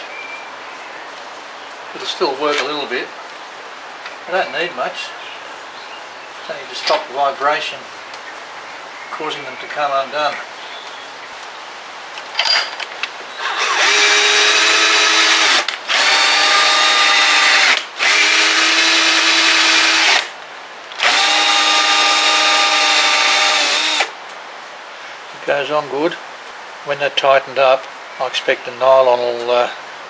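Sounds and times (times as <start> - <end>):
cordless drill motor whine: 13.4 - 20.2, 21.0 - 24.1.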